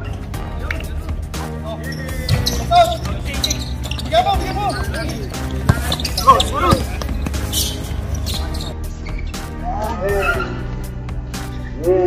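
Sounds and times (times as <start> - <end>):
background music: 0.0 - 12.0
players shouting: 1.8 - 8.7
basketball bouncing on concrete: 2.3 - 8.7.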